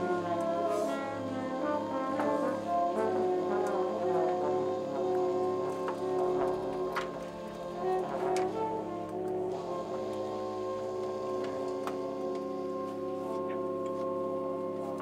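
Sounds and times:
jazz big band playing: 0.0 - 11.4.

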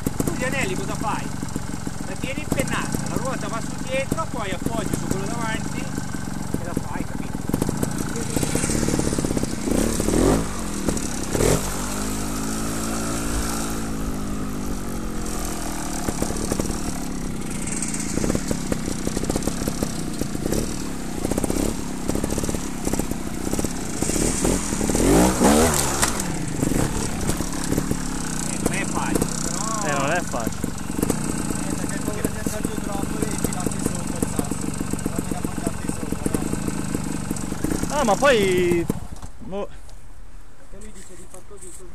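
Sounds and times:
motorcycle engine revving: 0.0 - 39.6.

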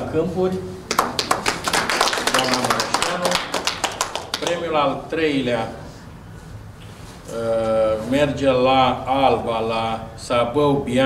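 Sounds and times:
small group clapping: 0.8 - 4.8.

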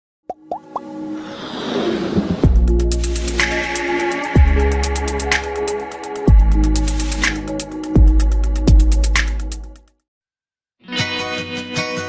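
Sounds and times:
whoosh with held tones: 1.1 - 2.5.

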